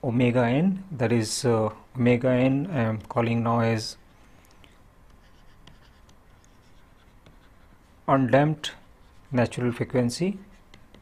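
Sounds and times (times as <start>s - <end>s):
pen scratching on paper: 5.1s - 7.9s, 8.6s - 9.6s, 10.4s - 11.0s.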